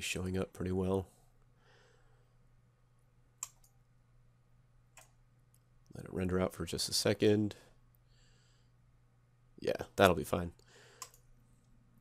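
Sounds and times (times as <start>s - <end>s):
low steady hum: 0.0s - 12.0s
computer mouse clicks: 3.4s - 3.8s, 5.0s - 5.7s, 11.0s - 11.8s.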